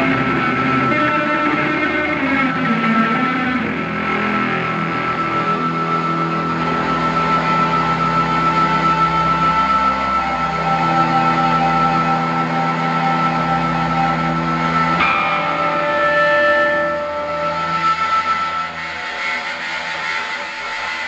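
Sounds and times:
live band playing chords: 0:00.0 - 0:21.0.

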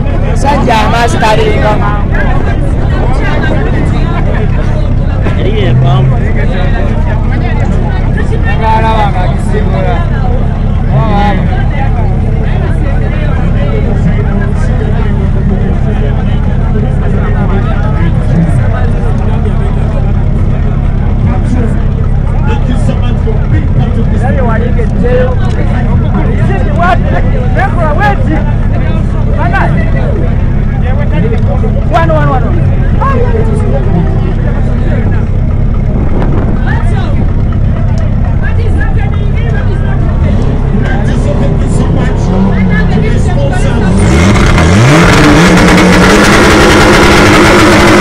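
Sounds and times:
crowd talking and calling: 0:00.0 - 0:48.0.

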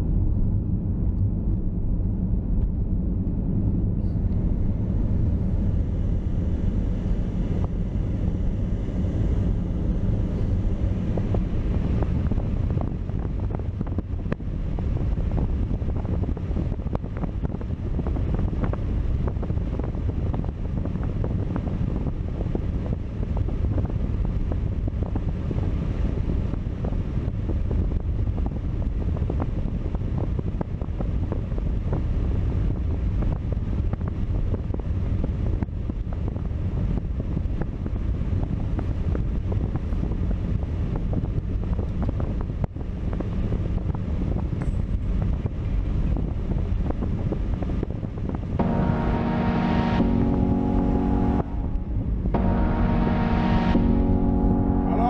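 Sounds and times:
car road rumble on snow: 0:00.0 - 0:55.0.

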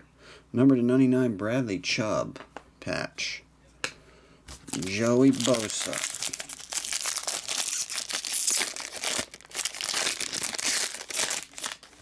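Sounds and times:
foil wrapper tearing and crinkling: 0:04.5 - 0:12.0.

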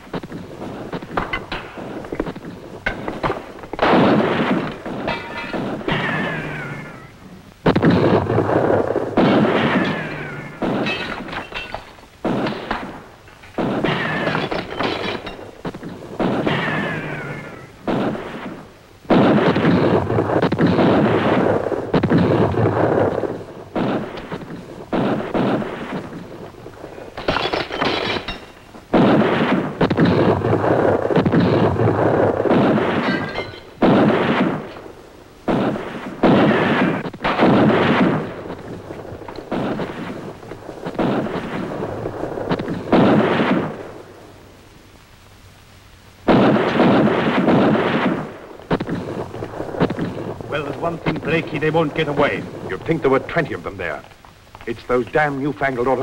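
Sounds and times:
rifle and pistol gunfire: 0:02.9 - 0:06.6, 0:07.6 - 0:26.4, 0:27.1 - 0:44.0, 0:46.3 - 0:53.6.

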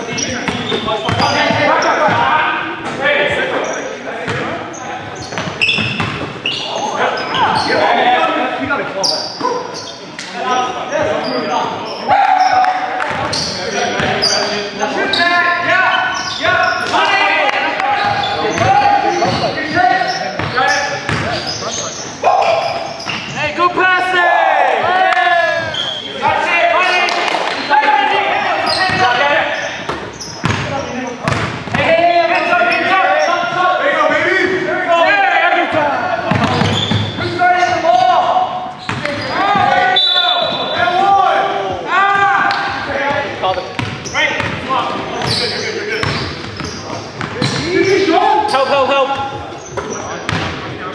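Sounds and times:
sneakers squeaking: 0:00.0 - 0:23.8, 0:24.8 - 0:33.6, 0:35.7 - 0:50.9
players' indistinct calls: 0:00.0 - 0:50.9.

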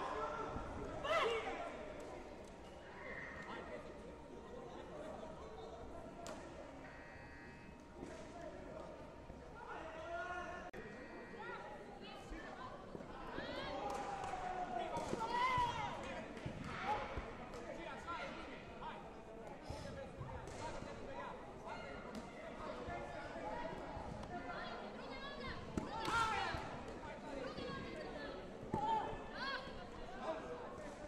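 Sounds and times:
faint voices echoing: 0:00.0 - 0:31.0.

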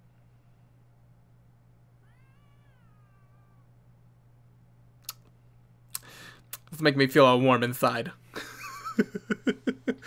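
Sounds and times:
low electrical hum: 0:00.0 - 0:10.0
faint meow-like call: 0:02.0 - 0:03.8.

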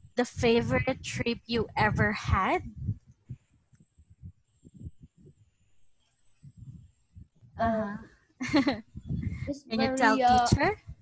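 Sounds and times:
faint low bumps: 0:00.0 - 0:11.0.

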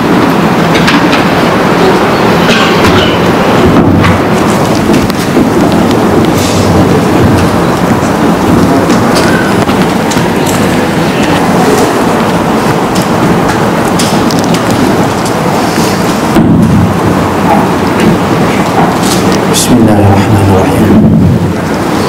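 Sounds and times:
loud steady rumbling: 0:00.0 - 0:22.0.

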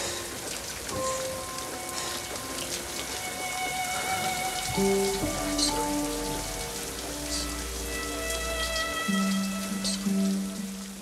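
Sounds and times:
shower water spraying: 0:00.0 - 0:11.0.

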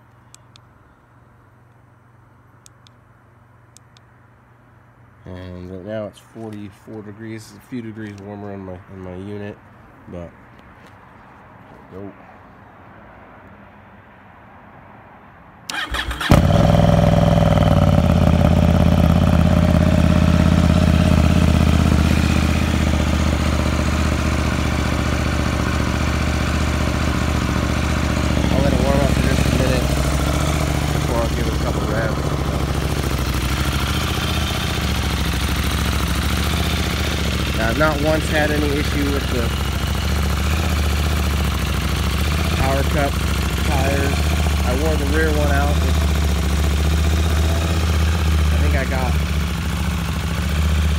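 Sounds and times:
electric starter whirring: 0:15.7 - 0:21.9
motorcycle engine idling: 0:15.7 - 0:50.9.

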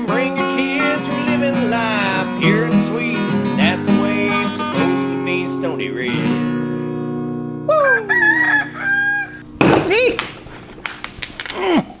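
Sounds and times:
rooster crowing: 0:07.7 - 0:09.4
chicken squawk: 0:07.7 - 0:09.5
chicken falling call: 0:07.9 - 0:09.4.

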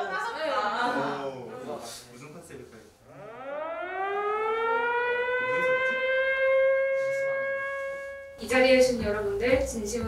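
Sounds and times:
siren wailing: 0:03.0 - 0:08.5.

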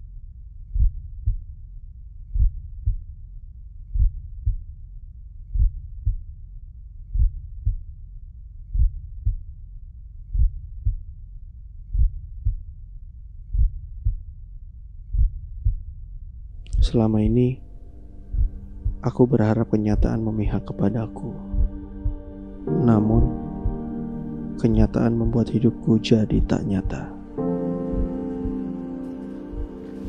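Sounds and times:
heartbeat double thump: 0:00.7 - 0:01.4, 0:02.3 - 0:03.0, 0:04.0 - 0:04.6, 0:05.5 - 0:06.2, 0:07.1 - 0:07.8, 0:08.7 - 0:09.4, 0:10.3 - 0:11.0, 0:11.9 - 0:12.6, 0:13.5 - 0:14.2, 0:15.1 - 0:15.8, 0:18.1 - 0:19.0, 0:21.4 - 0:25.4, 0:26.3 - 0:28.7
steady low rumble: 0:15.1 - 0:30.0.

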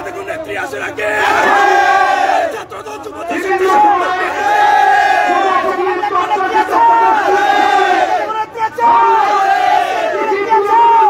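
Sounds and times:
crowd chanting: 0:01.1 - 0:02.5, 0:03.6 - 0:05.8, 0:06.4 - 0:11.0.

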